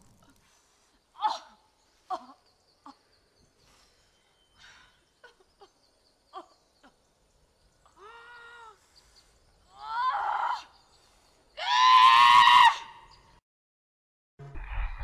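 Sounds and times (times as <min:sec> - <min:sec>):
wordless cries: 0:07.8 - 0:09.0, 0:09.7 - 0:13.2
scream-like wail: 0:11.6 - 0:13.0.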